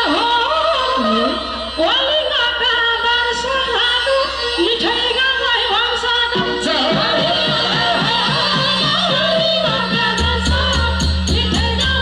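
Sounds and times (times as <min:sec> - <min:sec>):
musical accompaniment: 0:02.5 - 0:12.0
woman and man singing: 0:03.3 - 0:12.0
low rhythmic beat: 0:06.4 - 0:12.0.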